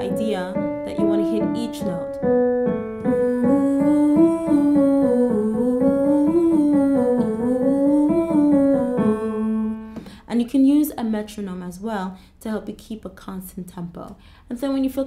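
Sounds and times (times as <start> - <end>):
electric piano playing: 0.0 - 10.1
sustained ooh vocal tone: 3.0 - 9.9.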